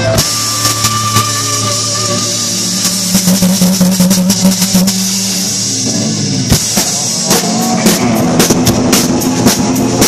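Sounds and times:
distorted electric guitar note: 0.0s - 10.0s
drum and cymbal hits: 0.0s - 10.0s
live rock band playing: 0.0s - 10.0s.

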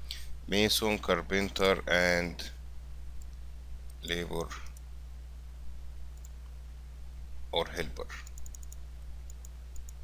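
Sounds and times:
low electrical hum: 0.0s - 10.0s
computer mouse clicks: 8.2s - 10.0s.

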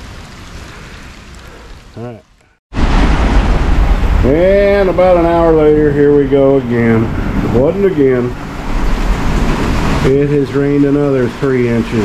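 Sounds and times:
water rushing from pipe: 0.0s - 12.0s
wind rumble on microphone: 2.8s - 12.0s.

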